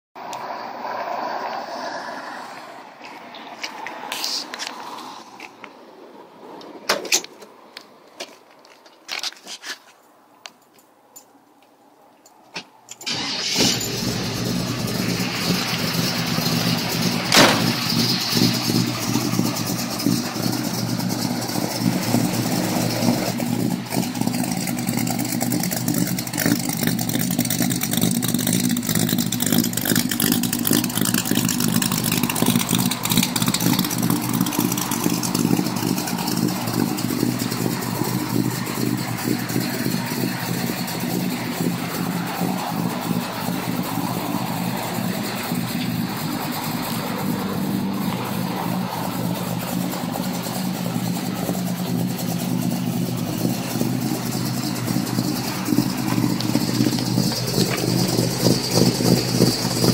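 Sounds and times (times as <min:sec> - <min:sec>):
car engine cranking and idling: 0:12.5 - 0:59.9.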